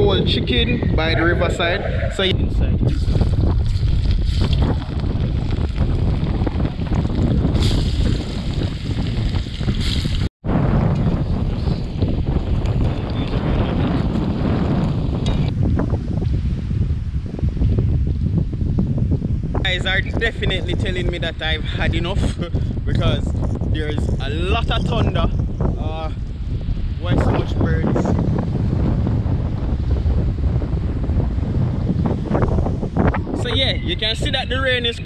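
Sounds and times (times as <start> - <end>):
strong wind buffeting microphone: 0.0 - 35.0.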